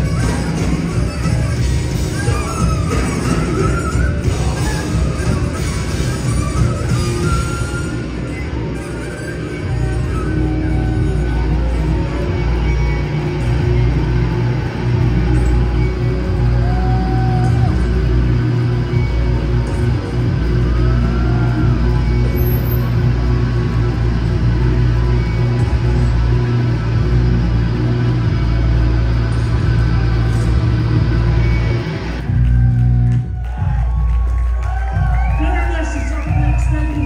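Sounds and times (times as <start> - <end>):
distorted guitars and bass droning: 0.0 - 37.0.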